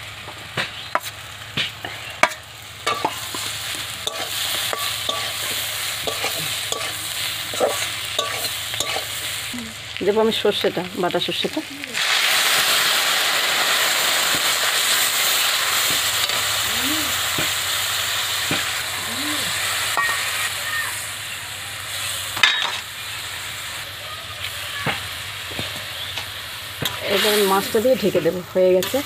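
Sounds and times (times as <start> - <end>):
oil and vegetables sizzling: 0.0 - 29.0.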